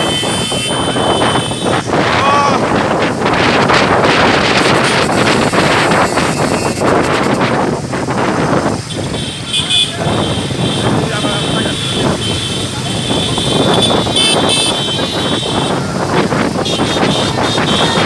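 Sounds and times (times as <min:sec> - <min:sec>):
vehicle horn: 0:00.0 - 0:01.8, 0:04.6 - 0:07.4, 0:08.9 - 0:16.0, 0:16.6 - 0:18.0
voices: 0:00.0 - 0:03.3, 0:08.4 - 0:18.0
motorcycles riding: 0:00.0 - 0:18.0
wind buffeting microphone: 0:00.0 - 0:18.0.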